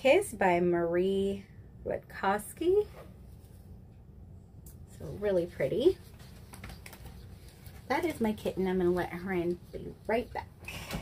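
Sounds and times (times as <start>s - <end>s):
low room hum: 0.0s - 11.0s
mousepad rubbing and rustling: 2.7s - 3.9s, 5.0s - 10.5s.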